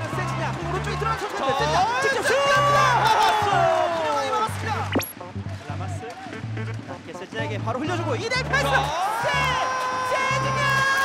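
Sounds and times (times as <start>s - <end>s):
background music with bass line: 4.5s - 9.6s.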